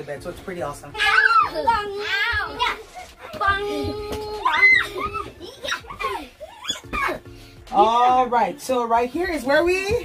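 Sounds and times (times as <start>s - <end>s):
children shrieking and shouting: 1.0s - 7.3s.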